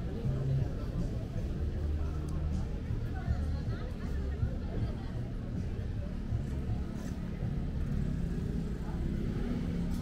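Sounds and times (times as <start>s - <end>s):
faint voices: 0.0s - 10.0s
low street rumble: 0.0s - 10.0s.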